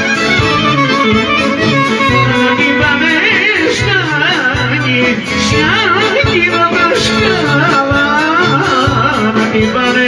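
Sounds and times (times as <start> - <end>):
ornamented clarinet melody: 0.0 - 3.2
folk band playing: 0.0 - 10.0
man singing into a microphone: 0.0 - 10.0.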